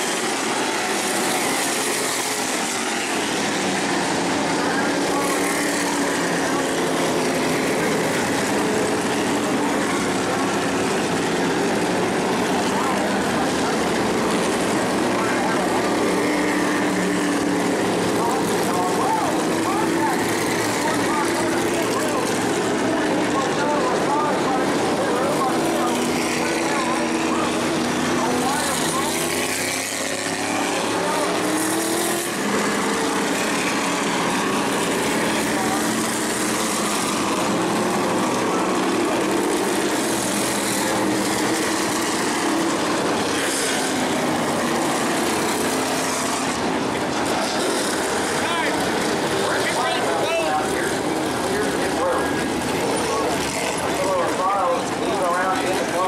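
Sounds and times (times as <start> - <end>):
indistinct voices: 0.0 - 56.0
race car engines running: 0.0 - 56.0.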